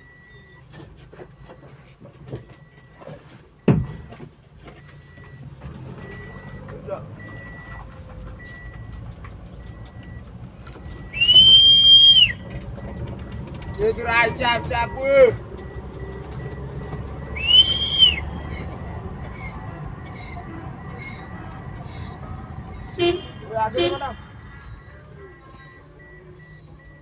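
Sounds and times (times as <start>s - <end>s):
engine and tyres rumbling: 0.0s - 27.0s
high whistle-like tone: 11.0s - 12.4s, 17.3s - 18.7s.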